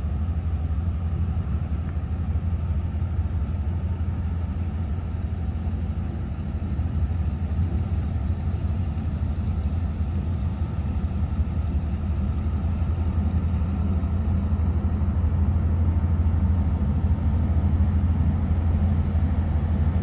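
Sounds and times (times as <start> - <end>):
diesel engine low rumble: 0.0 - 20.0.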